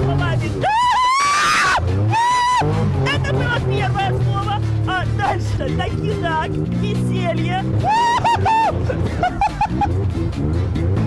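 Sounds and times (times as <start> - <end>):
woman screaming: 0.5 - 2.8, 7.8 - 8.8.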